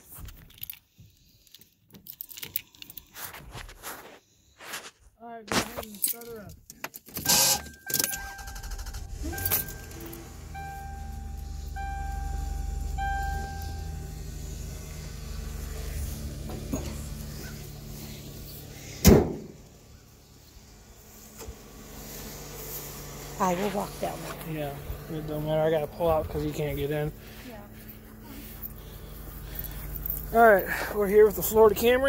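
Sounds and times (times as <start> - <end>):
car warning chime beeping: 7.2 - 15.2
car engine idling: 7.3 - 32.0
car door slamming: 19.0 - 19.6.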